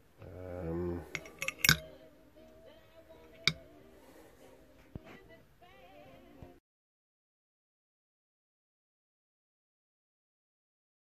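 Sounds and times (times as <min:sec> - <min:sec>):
faint background music: 0:00.0 - 0:06.6
metal parts clicking: 0:01.1 - 0:01.8.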